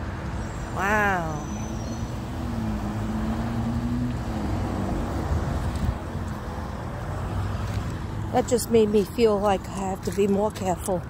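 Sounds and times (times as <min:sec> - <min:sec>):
traffic rumble: 0:00.0 - 0:11.0
vehicle engine hum: 0:00.0 - 0:11.0.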